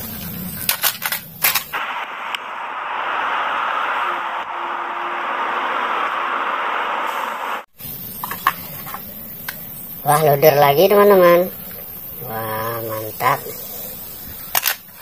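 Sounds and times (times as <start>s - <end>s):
plastic toy trucks clattering: 0.6s - 1.7s, 14.5s - 15.0s
clicks of toys being handled: 0.6s - 1.8s, 14.5s - 14.9s
concrete mixer rushing noise: 1.8s - 7.7s.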